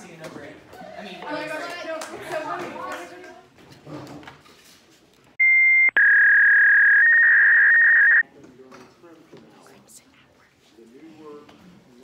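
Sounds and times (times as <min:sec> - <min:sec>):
electronic beep tone: 0:05.4 - 0:08.2.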